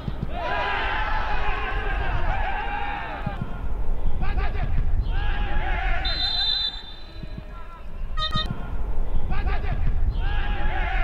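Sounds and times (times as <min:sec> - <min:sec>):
wind rumble on microphone: 0:00.0 - 0:06.1, 0:07.0 - 0:11.0.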